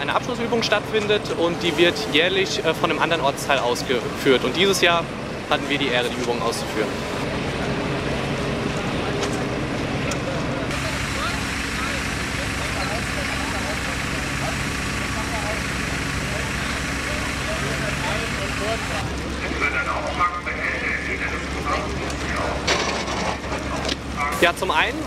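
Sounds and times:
fire engine pump running: 0.0 - 25.0
indistinct voices: 0.0 - 25.0.

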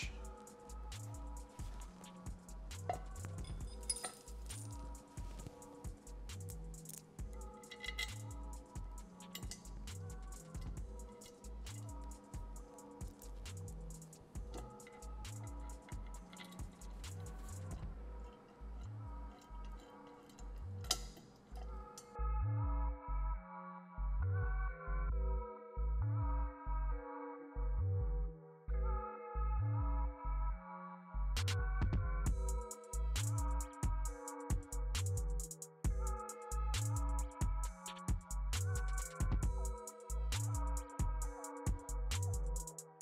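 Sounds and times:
background music with bass beat: 0.0 - 19.8, 31.3 - 43.0
metallic clinks of bolts and wrench: 2.9 - 5.6, 6.8 - 12.3, 14.4 - 22.2.

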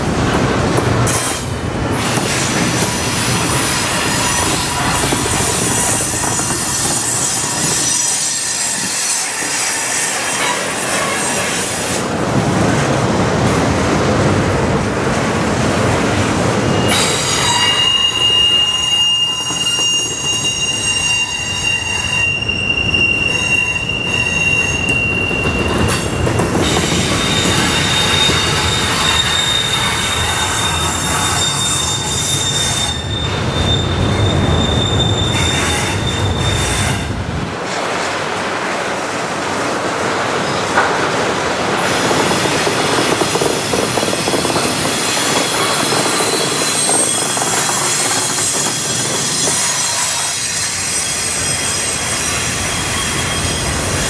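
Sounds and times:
train wheels rumbling on rails: 0.0 - 54.0
high wheel squeal: 2.0 - 11.9, 16.6 - 37.1, 41.8 - 54.0.

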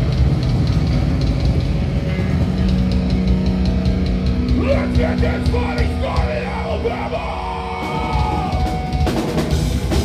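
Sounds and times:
drums: 0.0 - 10.0
electric guitars: 0.0 - 10.0
vocalist yelling into microphone: 4.6 - 8.6.

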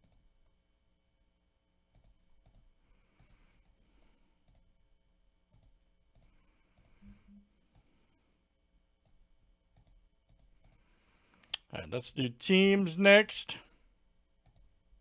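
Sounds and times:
computer mouse clicks: 0.0 - 0.2, 1.9 - 3.8, 4.4 - 4.7, 5.5 - 7.0, 9.0 - 11.7, 14.4 - 14.7.

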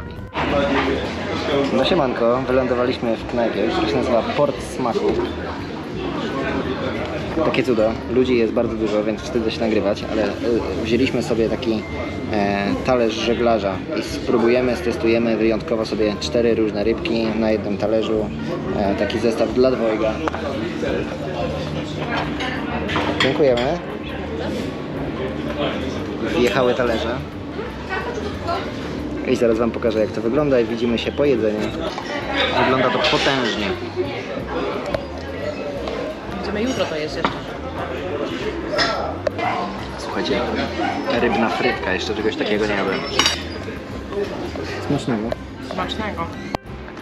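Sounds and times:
indistinct talking of people: 0.0 - 47.0
murmur of diners' voices: 0.0 - 47.0
cutlery clinking on plate: 43.0 - 43.6.

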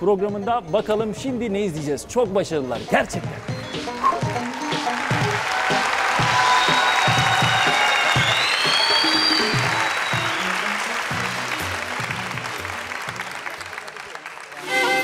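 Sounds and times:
background music with low beat: 0.0 - 13.6
studio audience applauding: 3.2 - 15.0.

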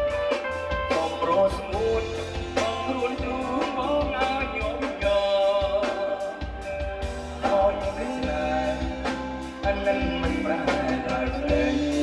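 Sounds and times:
band playing a song: 0.0 - 12.0
person singing: 0.0 - 12.0.

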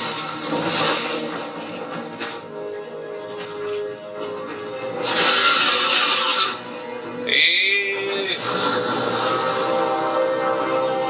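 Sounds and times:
background music: 0.0 - 11.0
dragon roar screech: 5.0 - 6.6.

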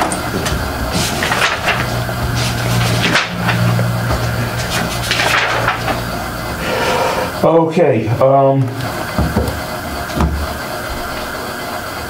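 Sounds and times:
steady low hum: 0.0 - 12.0
paper rustling: 0.2 - 6.2.

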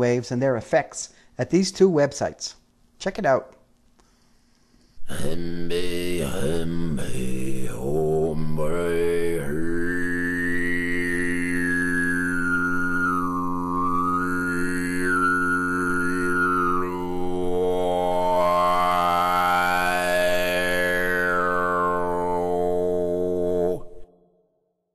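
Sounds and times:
deep sustained vocal drone: 5.0 - 24.2.

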